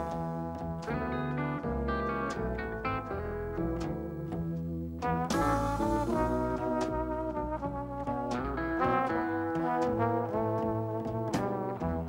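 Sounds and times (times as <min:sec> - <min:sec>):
jazz band playing: 0:00.0 - 0:12.0
trombone melody: 0:00.0 - 0:12.0.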